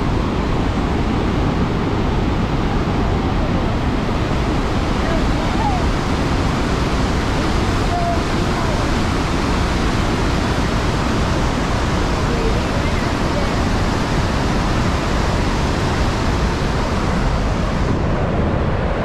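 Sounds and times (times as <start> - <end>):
waterfall rushing: 0.0 - 19.0.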